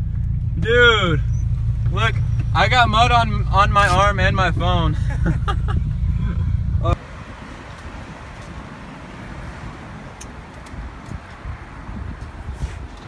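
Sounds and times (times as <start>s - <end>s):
car engine and road drone: 0.0s - 13.0s
outdoor noise: 0.0s - 13.0s.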